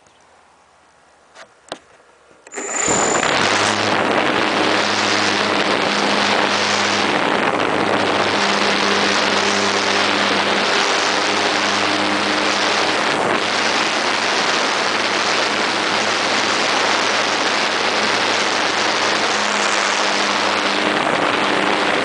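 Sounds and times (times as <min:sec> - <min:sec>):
rushing air noise on microphone: 0:00.3 - 0:22.0
electric motor and propeller whine: 0:02.4 - 0:22.0.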